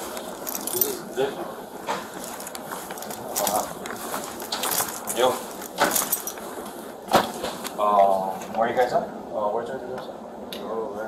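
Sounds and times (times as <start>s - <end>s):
metallic jangling of gear: 0.2s - 1.1s, 2.1s - 6.4s.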